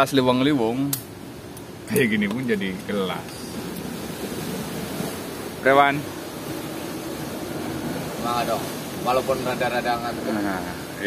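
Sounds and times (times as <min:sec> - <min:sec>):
ocean surf breaking on rocks: 0:03.2 - 0:11.0.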